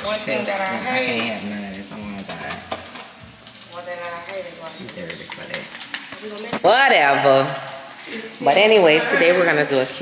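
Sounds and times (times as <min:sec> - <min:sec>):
food sizzling in a frying pan: 0:00.0 - 0:10.0.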